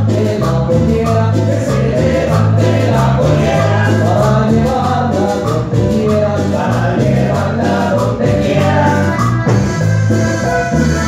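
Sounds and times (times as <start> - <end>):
voices singing together: 0.0 - 9.6
bass: 0.0 - 11.0
congas: 0.0 - 11.0.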